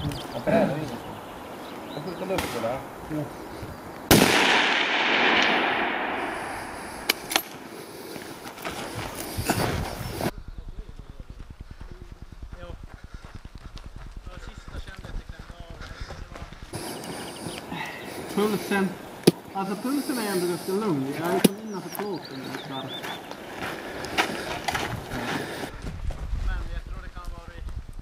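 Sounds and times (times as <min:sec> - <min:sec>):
rifle shot echoing: 0:04.1 - 0:07.7.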